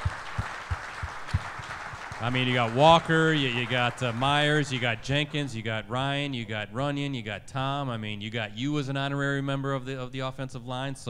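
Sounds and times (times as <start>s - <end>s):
light applause: 0.0s - 5.6s.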